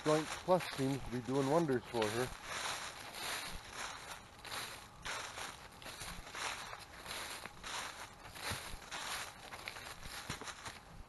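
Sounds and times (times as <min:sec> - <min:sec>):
footsteps crunching dry leaves: 0:00.0 - 0:11.0.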